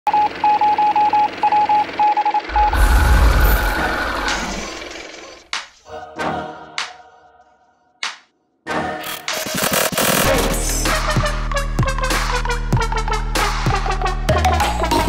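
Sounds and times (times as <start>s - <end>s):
deep boom: 2.5s - 5.0s
sharp musical stabs: 2.5s - 5.5s.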